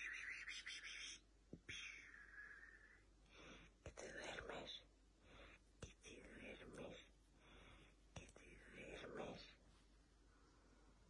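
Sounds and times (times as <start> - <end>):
person whispering: 0.0 - 3.1, 3.8 - 4.9, 5.8 - 7.2, 8.2 - 9.6.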